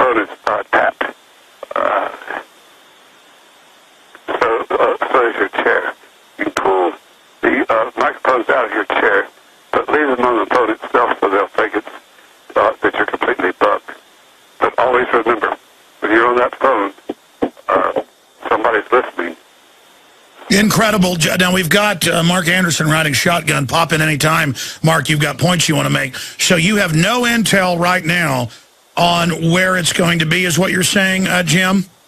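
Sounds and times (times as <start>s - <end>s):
man talking over telephone: 0.0s - 2.5s, 4.1s - 19.4s, 20.4s - 32.0s
telephone line hiss: 0.0s - 32.0s.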